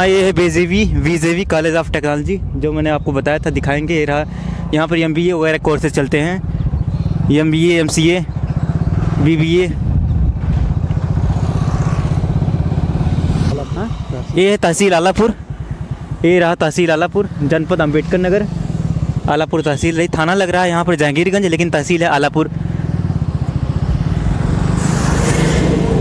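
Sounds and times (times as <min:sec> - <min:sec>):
motorcycle engine running: 0:00.0 - 0:26.0
wind noise: 0:08.4 - 0:14.4.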